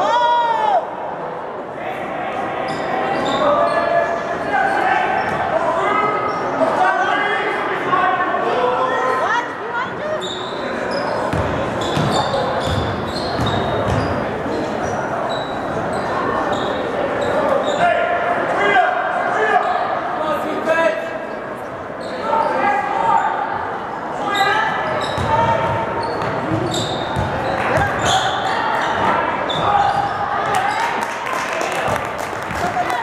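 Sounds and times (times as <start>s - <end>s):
sneakers squeaking: 2.6s - 5.5s, 9.9s - 18.0s, 21.6s - 22.6s, 24.3s - 31.1s.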